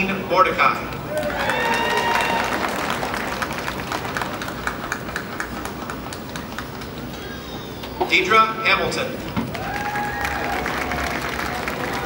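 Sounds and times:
crowd whooping: 0:01.1 - 0:03.3, 0:09.5 - 0:12.0
audience applauding: 0:01.1 - 0:07.1, 0:09.5 - 0:12.0.

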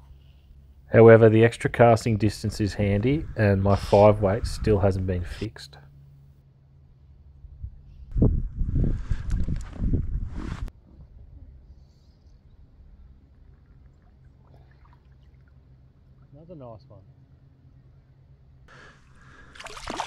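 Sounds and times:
water splashing and sloshing: 0:13.2 - 0:16.3, 0:19.0 - 0:20.0.

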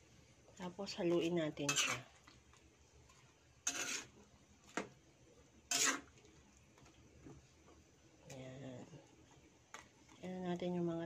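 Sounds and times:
metal tongs scraping pan: 0:01.6 - 0:02.1, 0:03.6 - 0:04.2, 0:05.7 - 0:06.1.

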